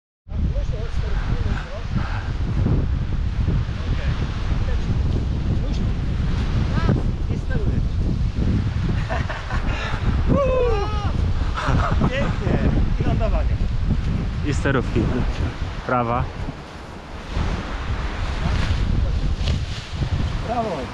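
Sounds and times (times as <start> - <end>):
wind rumbling on microphone: 0.3 - 20.9.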